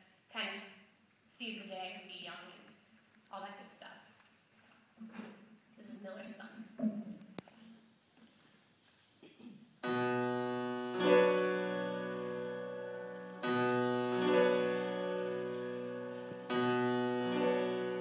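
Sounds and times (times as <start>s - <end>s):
grand piano chords: 9.8s - 18.0s.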